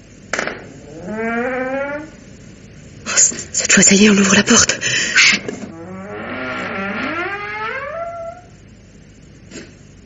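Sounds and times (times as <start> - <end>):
door hinges creaking: 0.8 - 2.2, 5.6 - 8.6.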